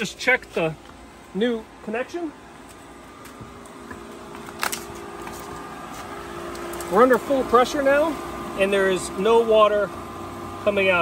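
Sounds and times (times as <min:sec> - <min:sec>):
pool pump motor humming: 0:00.0 - 0:11.0.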